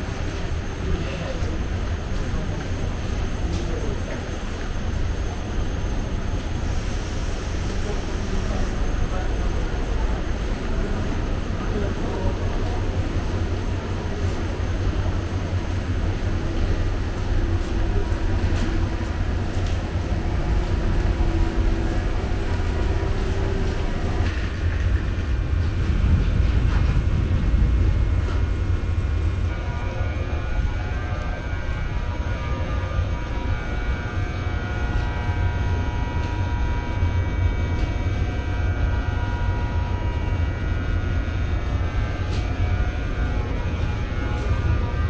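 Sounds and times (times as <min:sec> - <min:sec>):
faint whining tones: 0:00.0 - 0:45.0
train idling low drone: 0:00.0 - 0:45.0.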